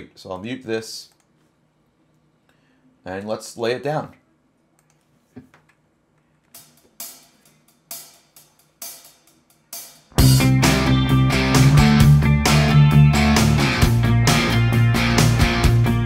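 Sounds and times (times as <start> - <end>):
drum hits: 6.6 - 14.5
distorted electric guitar: 10.2 - 16.0.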